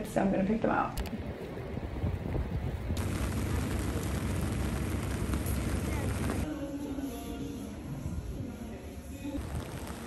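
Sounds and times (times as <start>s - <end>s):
deep continuous rumble: 2.5s - 6.5s
rain hissing on wet street: 3.0s - 6.5s.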